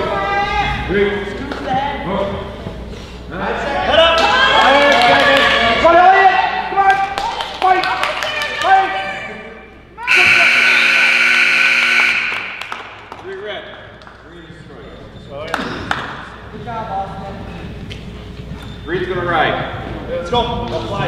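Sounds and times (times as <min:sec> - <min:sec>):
scoreboard buzzer: 0:10.1 - 0:12.8.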